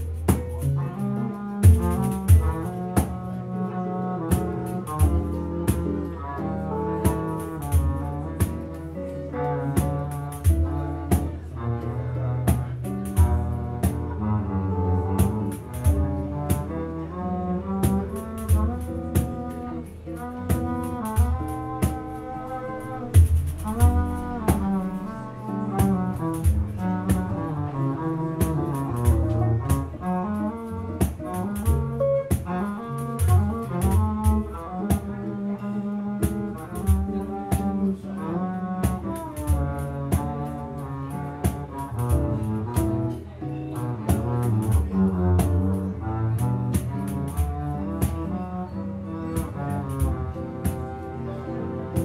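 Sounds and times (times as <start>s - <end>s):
acoustic guitar: 0.0s - 16.8s, 17.4s - 39.6s
bowed double bass: 0.0s - 52.0s.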